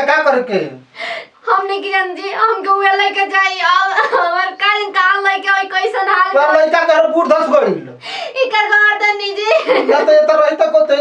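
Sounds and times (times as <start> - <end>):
woman crying and wailing: 3.9 - 4.6.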